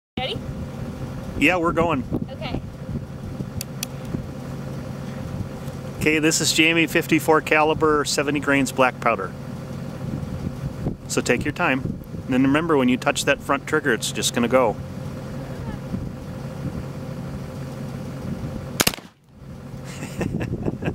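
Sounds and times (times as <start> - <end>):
steady low hum: 0.2 - 20.9
vehicle engine idling: 0.2 - 20.9
wind on microphone: 0.4 - 4.3
rifle shot: 18.8 - 19.2.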